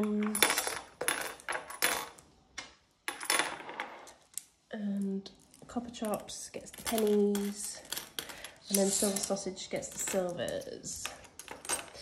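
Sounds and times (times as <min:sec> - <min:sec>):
coins clinking into piggy bank: 0:00.0 - 0:02.2, 0:06.6 - 0:12.0.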